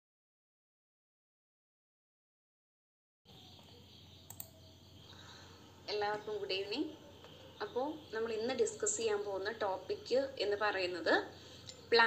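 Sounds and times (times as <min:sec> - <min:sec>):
faint room tone hiss: 0:03.3 - 0:12.0
quick clicks: 0:04.3 - 0:04.6
woman speaking: 0:05.9 - 0:07.0, 0:07.6 - 0:12.0.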